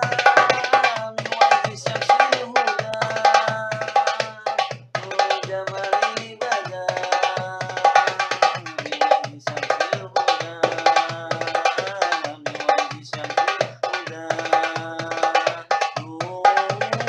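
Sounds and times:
hand drum rhythm: 0:00.0 - 0:17.0.

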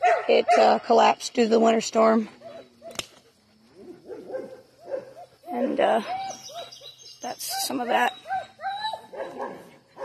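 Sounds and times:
sharp click: 0:02.9 - 0:03.2
dog whimpering: 0:05.5 - 0:09.5.

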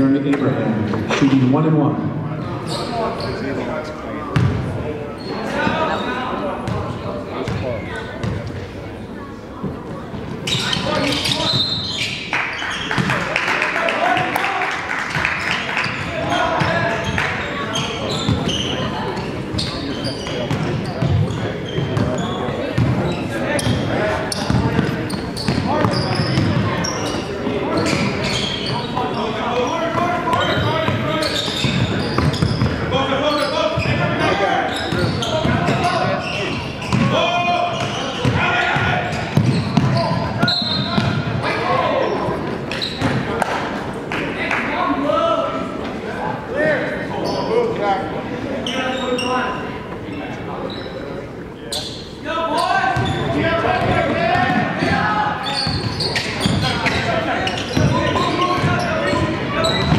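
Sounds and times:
spectators talking and calling out: 0:00.0 - 0:59.9
basketball bouncing on hardwood: 0:38.2 - 0:40.0.

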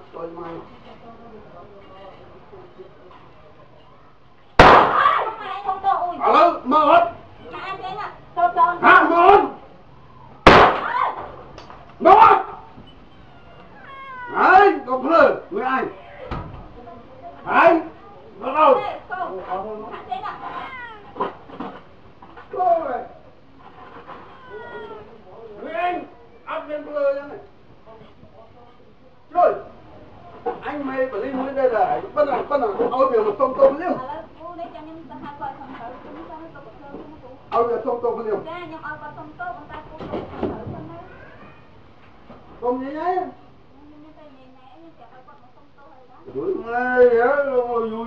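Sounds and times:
murmur of background voices: 0:00.0 - 0:48.0
loud gunshot: 0:04.6 - 0:05.2, 0:10.4 - 0:11.1
cat meowing: 0:13.0 - 0:14.8, 0:24.2 - 0:25.2.

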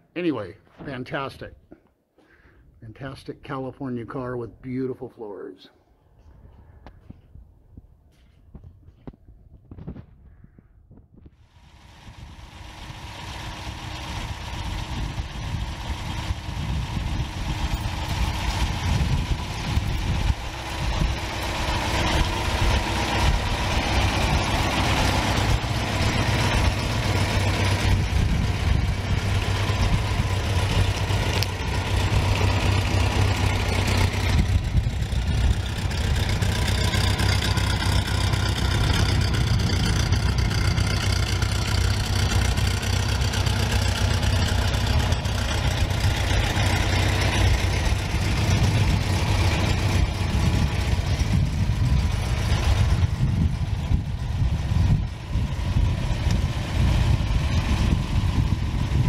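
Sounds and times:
car engine idling: 0:11.4 - 0:59.0.

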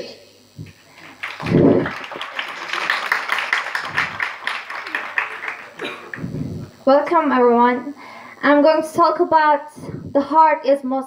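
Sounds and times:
audience applauding: 0:00.7 - 0:06.7.

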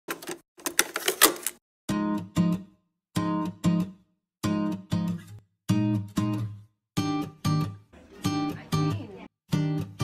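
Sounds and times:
tape mechanism clicking and clunking: 0:00.1 - 0:01.6.

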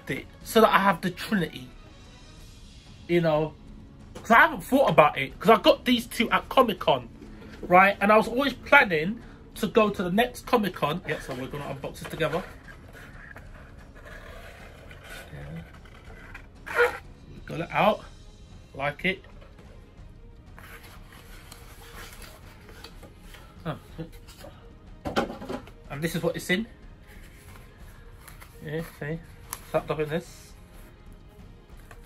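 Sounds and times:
man speaking: 0:04.3 - 0:13.3
cardboard scraping: 0:11.1 - 0:17.0.

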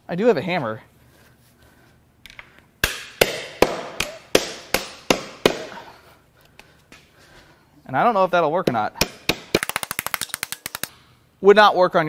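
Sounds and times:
hammer striking metal: 0:02.8 - 0:05.8, 0:08.7 - 0:10.3.

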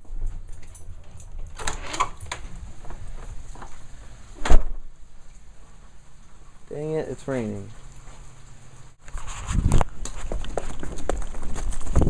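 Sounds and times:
door handling and scraping: 0:00.6 - 0:04.8
loud door bang: 0:04.4 - 0:04.9.

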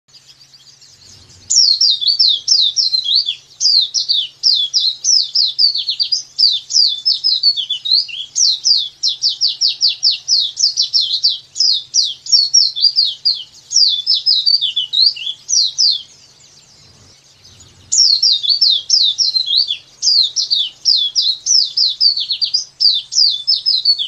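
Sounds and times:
bird singing high fast notes: 0:00.2 - 0:24.0.

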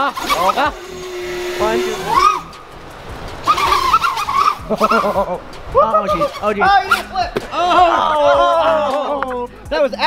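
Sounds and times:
quadcopter motors buzzing: 0:00.0 - 0:07.2
people crying out and laughing: 0:00.7 - 0:09.7.

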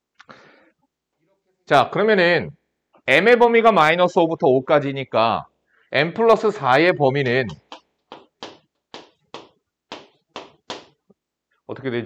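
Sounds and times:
chalk writing on chalkboard: 0:07.6 - 0:11.0.

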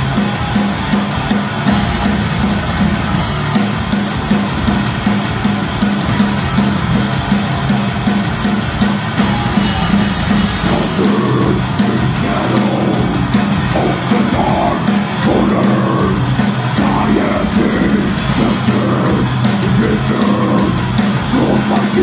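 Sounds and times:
bass guitar: 0:00.0 - 0:22.0
distorted electric guitar: 0:00.0 - 0:22.0
drum kit: 0:00.0 - 0:22.0.

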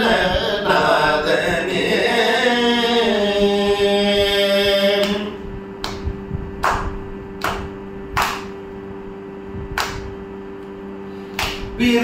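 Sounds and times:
steady drone: 0:00.0 - 0:12.0
hand claps: 0:05.0 - 0:08.6, 0:09.8 - 0:10.1, 0:11.3 - 0:11.8.

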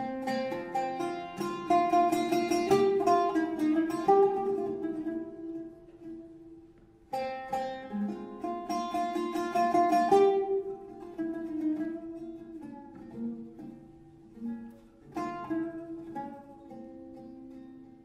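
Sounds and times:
oud playing: 0:00.0 - 0:18.0.

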